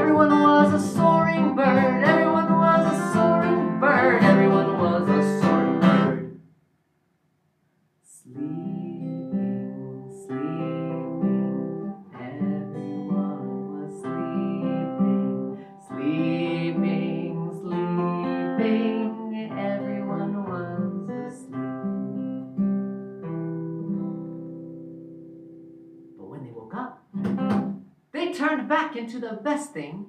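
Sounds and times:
acoustic guitar strumming: 0:00.0 - 0:06.4, 0:08.4 - 0:26.2, 0:27.1 - 0:27.8.

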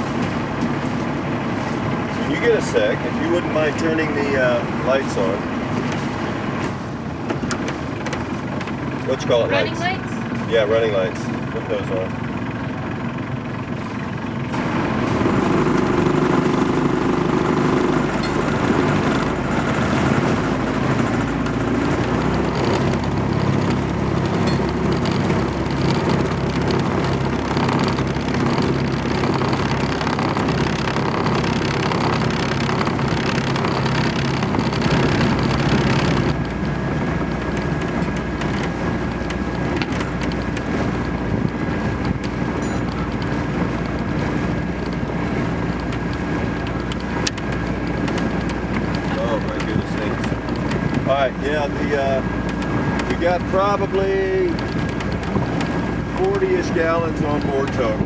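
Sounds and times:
diesel engine running: 0:00.0 - 0:58.0
tripod vibrating against boat: 0:00.0 - 0:58.0.

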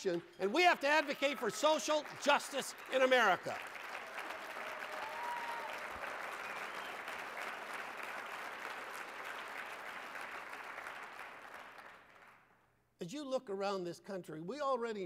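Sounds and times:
audience applauding: 0:00.0 - 0:12.5.

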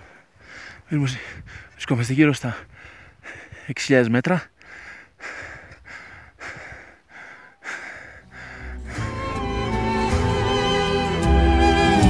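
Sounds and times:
hard rapid breathing: 0:00.0 - 0:01.8, 0:02.4 - 0:09.4
music: 0:08.6 - 0:12.0.

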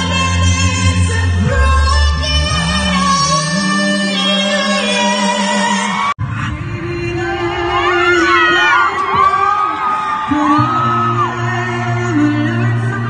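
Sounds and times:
vocal group singing: 0:00.0 - 0:13.0
audience whoops: 0:07.2 - 0:11.8.

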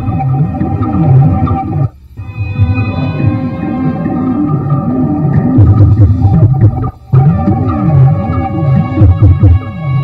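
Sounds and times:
steady held drones: 0:00.0 - 0:10.0
swooping low synthesized tones: 0:00.0 - 0:10.0.

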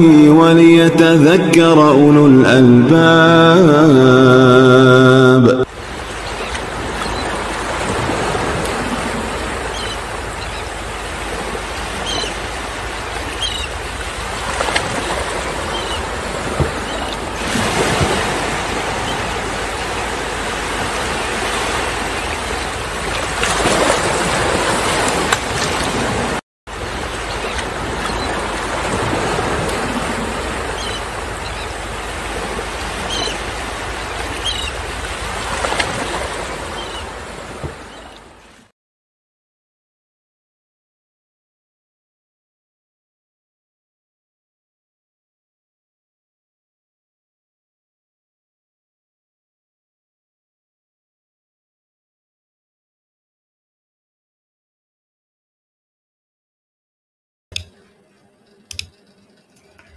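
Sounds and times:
rushing water: 0:00.0 - 0:38.7.

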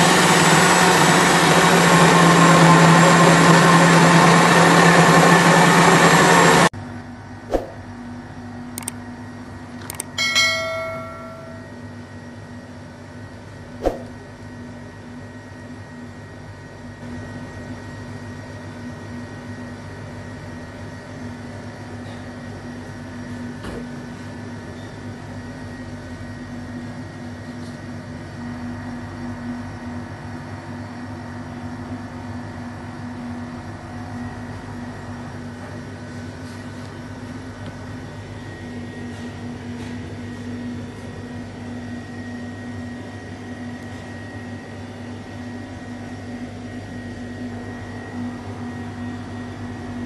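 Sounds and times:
steady mechanical hum: 0:06.5 - 0:50.0
low hum: 0:07.2 - 0:08.2, 0:09.9 - 0:11.8, 0:13.8 - 0:14.3
click: 0:08.8 - 0:09.0, 0:09.8 - 0:10.1
bright bell dings: 0:10.2 - 0:11.8.

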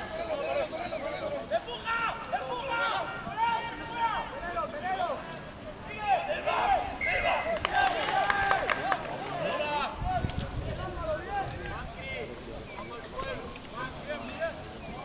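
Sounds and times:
voices shouting: 0:00.0 - 0:15.0.

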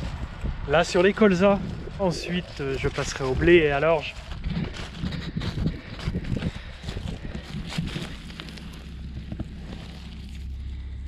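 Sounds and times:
wind on microphone: 0:00.0 - 0:10.3.

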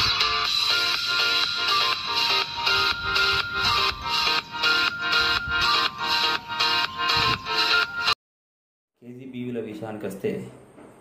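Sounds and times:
repeating pitched music phrase: 0:00.0 - 0:08.1.

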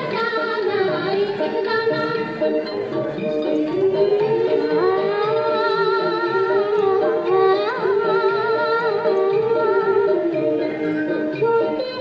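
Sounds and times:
person singing long notes: 0:03.6 - 0:12.0.

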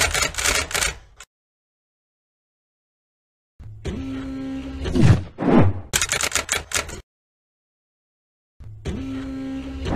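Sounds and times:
quick run of sharp clicks: 0:05.9 - 0:07.0.

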